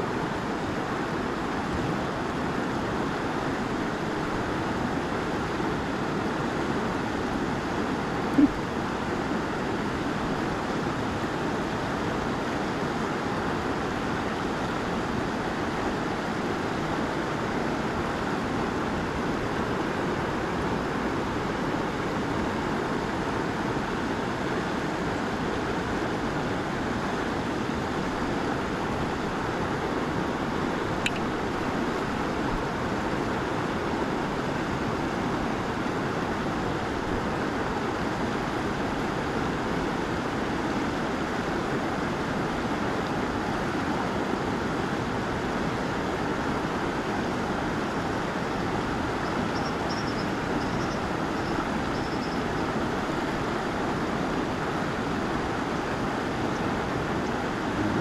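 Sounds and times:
river current flowing: 0:00.0 - 0:58.0
small click: 0:31.0 - 0:31.3.

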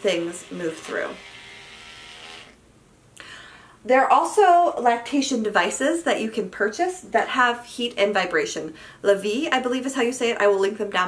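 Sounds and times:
electric toothbrush buzzing: 0:00.0 - 0:02.6.

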